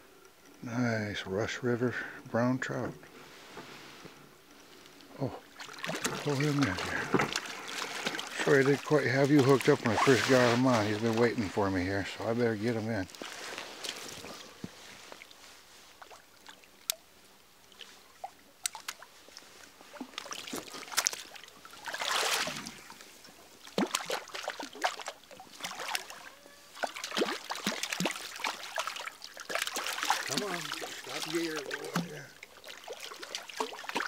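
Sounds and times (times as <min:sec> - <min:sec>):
trickling water: 0:05.0 - 0:15.4, 0:16.0 - 0:34.0
fish splashing at surface: 0:05.6 - 0:11.2, 0:19.9 - 0:22.9, 0:23.6 - 0:34.0.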